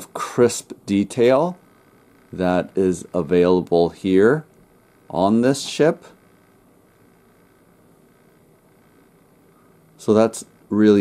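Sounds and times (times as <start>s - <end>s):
faint steady hiss: 0.0s - 11.0s
low hum: 0.0s - 11.0s.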